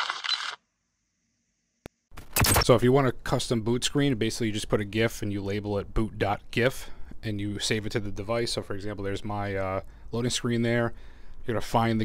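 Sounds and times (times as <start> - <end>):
sharp click: 2.2 - 2.7.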